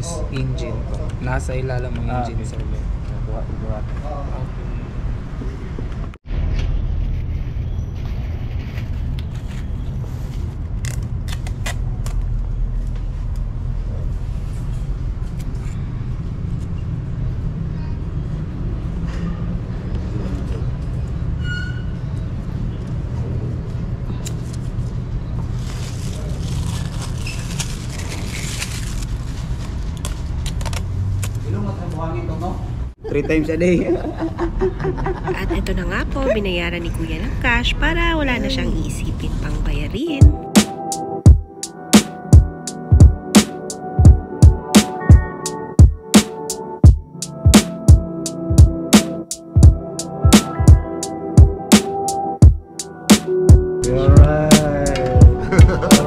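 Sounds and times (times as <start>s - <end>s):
muffled voices: 53.8s - 56.0s.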